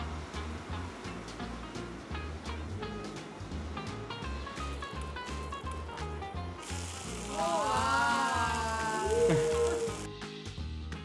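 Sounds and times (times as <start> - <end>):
music with steady beat: 0.0 - 7.0
food sizzling in frying pan: 4.4 - 10.1.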